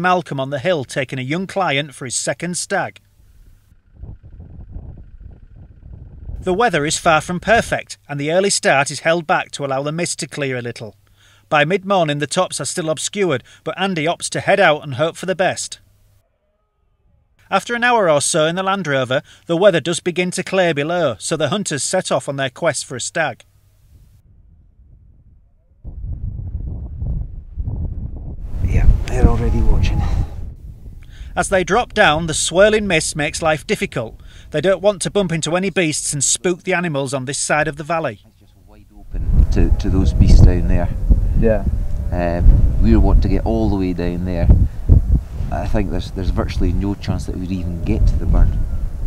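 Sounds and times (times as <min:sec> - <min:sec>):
wind buffeting microphone: 0:03.4 - 0:07.7, 0:23.9 - 0:35.6, 0:38.3 - 0:49.0.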